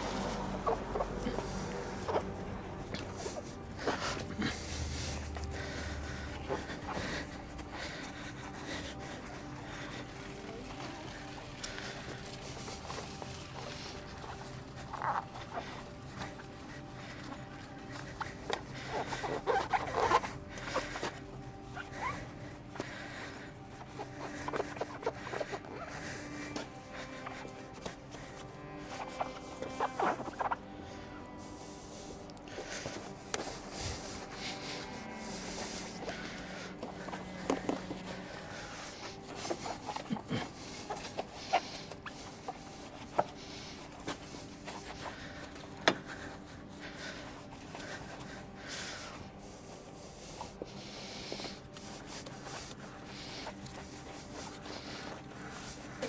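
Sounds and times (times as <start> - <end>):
hand rubbing and scrubbing: 0.0 - 56.0
quiet background music: 0.0 - 56.0.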